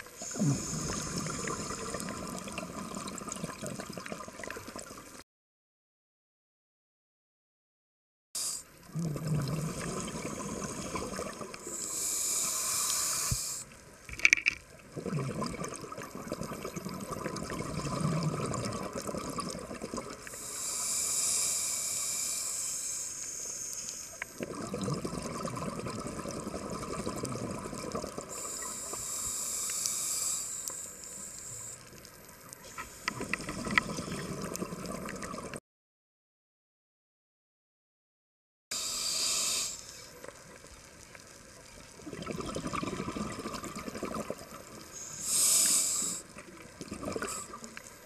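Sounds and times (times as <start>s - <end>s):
diver breathing through regulator: 0.2s - 2.2s, 8.4s - 13.7s, 20.3s - 24.2s, 28.3s - 31.8s, 38.7s - 39.9s, 44.9s - 46.3s.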